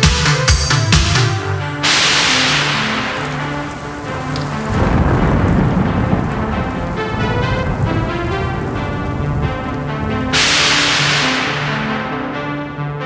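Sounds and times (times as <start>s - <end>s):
sustained synth bass notes: 0.9s - 13.0s
rain-like noise sweep: 1.7s - 13.0s
low thunder-like rumble: 1.8s - 12.8s.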